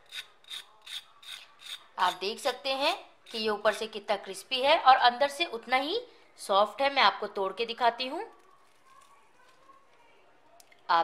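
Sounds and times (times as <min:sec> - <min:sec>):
fork scraping crispy crust: 0:00.0 - 0:02.2.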